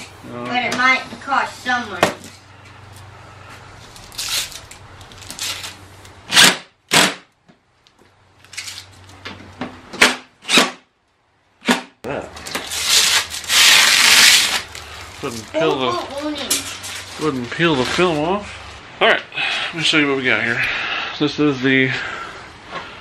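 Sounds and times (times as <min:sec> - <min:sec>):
plastic film being peeled off: 0:03.8 - 0:05.8, 0:12.4 - 0:18.3.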